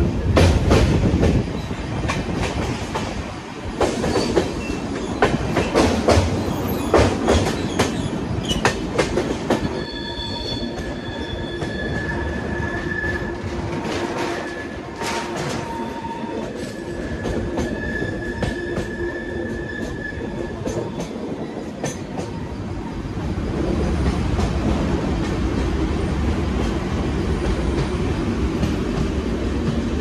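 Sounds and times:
passenger train rumbling: 0:00.0 - 0:30.0
train wheel clacks: 0:00.3 - 0:09.8, 0:13.4 - 0:22.5, 0:23.2 - 0:30.0
high wheel squeal: 0:09.7 - 0:13.4, 0:15.5 - 0:23.3.

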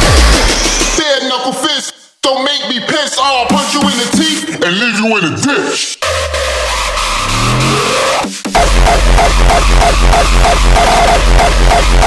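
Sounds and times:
rising synth sweep: 0:06.0 - 0:12.0.

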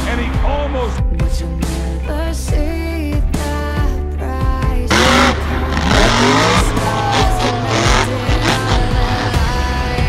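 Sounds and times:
backing music: 0:00.0 - 0:10.0
monster truck engine revving: 0:04.8 - 0:10.0.

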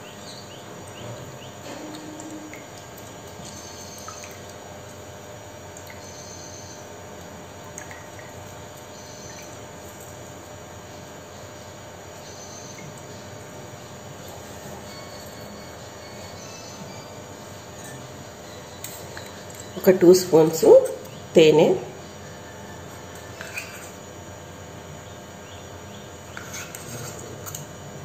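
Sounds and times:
background hum and hiss: 0:00.0 - 0:28.0
faint high-pitched chirps: 0:05.9 - 0:06.9, 0:08.9 - 0:09.5, 0:12.2 - 0:12.9.

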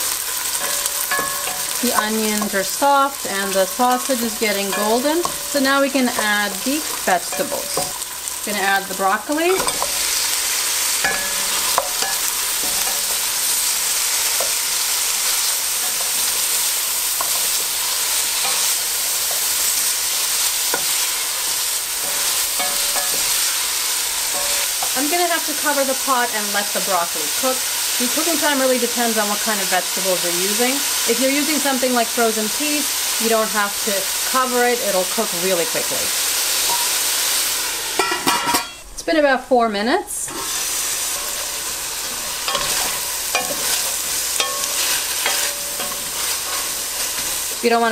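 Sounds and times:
vegetables sizzling in hot oil: 0:00.0 - 0:47.9.

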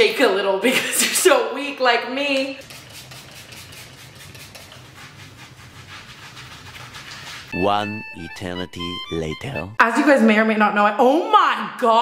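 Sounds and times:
short strokes on skin: 0:02.6 - 0:07.5.

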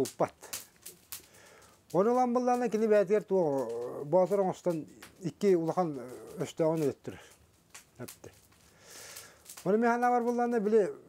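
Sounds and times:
man speaking: 0:00.0 - 0:00.6, 0:01.9 - 0:07.3, 0:08.0 - 0:08.4, 0:09.6 - 0:11.0.

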